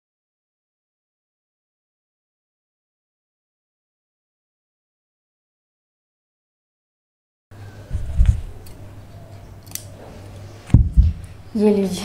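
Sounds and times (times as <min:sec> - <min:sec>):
scissors snipping thread: 0:09.6 - 0:10.4
dull thumps: 0:10.7 - 0:11.2.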